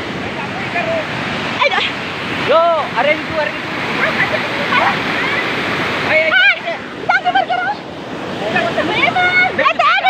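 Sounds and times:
river rushing: 0.0 - 10.0.

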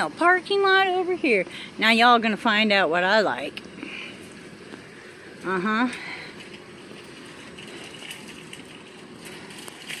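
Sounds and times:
distant traffic: 0.0 - 10.0.

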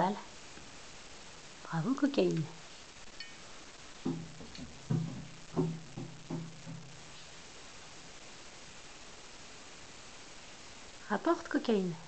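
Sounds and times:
hollow thumps on a bathtub: 4.0 - 7.1.

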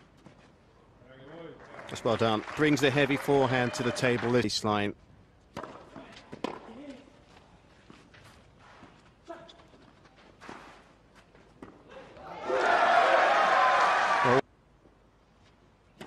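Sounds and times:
crowd applause: 1.6 - 4.4, 12.4 - 14.4
tennis racket hitting ball: 5.5 - 6.8.

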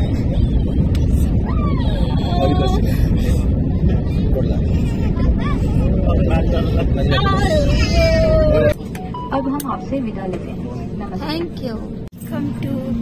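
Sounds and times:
faint voices: 0.0 - 13.0
jet engines and airflow rumble: 0.0 - 13.0.

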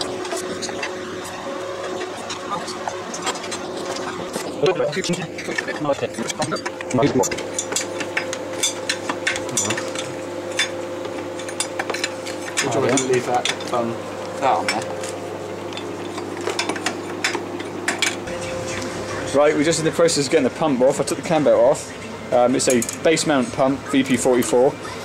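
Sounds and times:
steady low hum: 0.0 - 25.0
metal engine parts clinking: 3.1 - 13.8.

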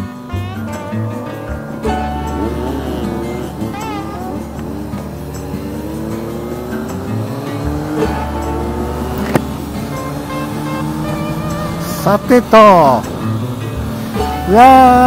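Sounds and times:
background music: 0.0 - 15.0
motorcycle engine accelerating: 0.0 - 15.0.

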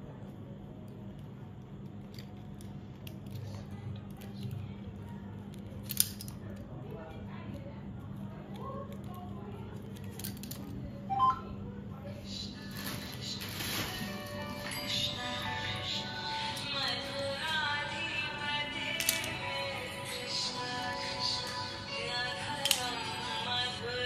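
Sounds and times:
music: 11.1 - 11.6, 12.7 - 24.0.

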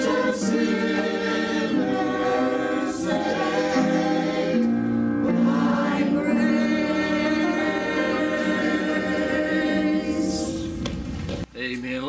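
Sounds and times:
choir singing a long chord: 0.0 - 10.8.

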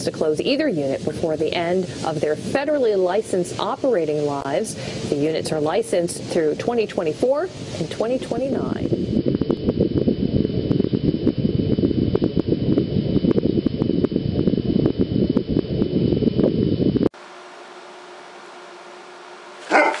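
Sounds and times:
quiet steady hum: 0.0 - 20.0
loud low rumbling with clicks: 7.8 - 17.2
dog barking: 19.6 - 20.0.

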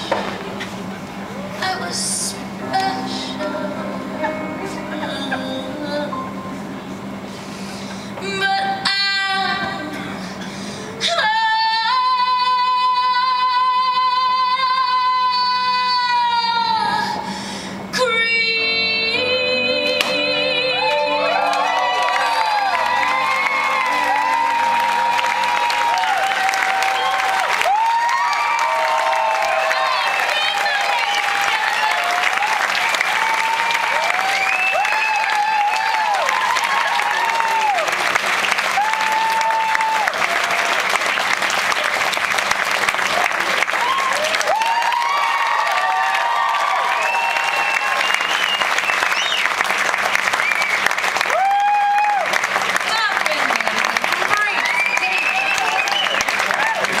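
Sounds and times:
audience whooping and shouting: 20.6 - 42.2, 42.9 - 57.0
audience clapping: 20.8 - 57.0.

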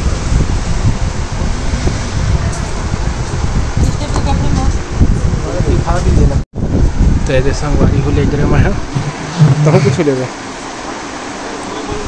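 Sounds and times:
wind buffeting microphone: 0.0 - 10.1.

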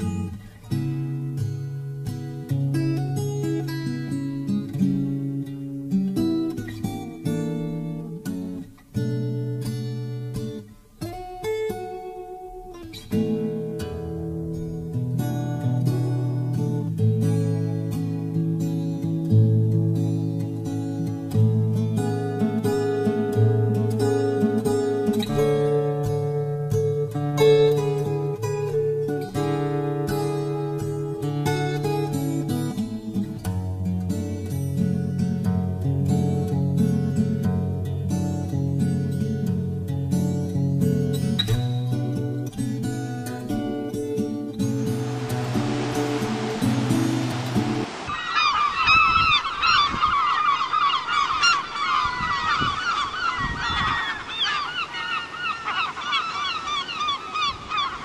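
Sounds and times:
acoustic guitar music: 0.0 - 48.7
rush of noise: 44.6 - 49.7
gulls calling: 44.6 - 58.0.

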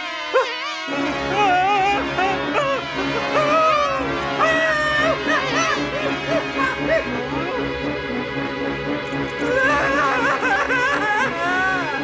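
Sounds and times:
cartoon character whimpering cries: 0.4 - 7.6, 9.4 - 12.0
cartoon music with repeating beat: 0.4 - 12.0.

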